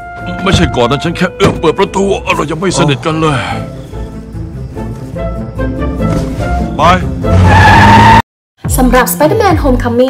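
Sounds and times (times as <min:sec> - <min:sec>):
film score music: 0:00.0 - 0:10.0
tyre squeal: 0:06.1 - 0:08.2.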